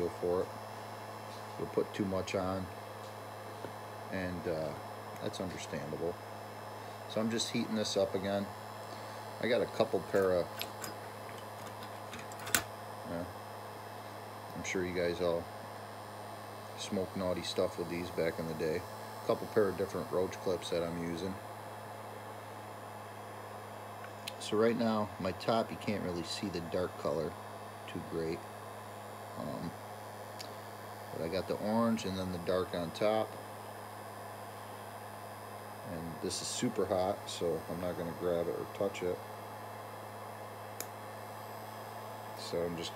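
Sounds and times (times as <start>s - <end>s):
heat gun humming: 0.0s - 42.9s
sharp click: 10.2s - 12.7s.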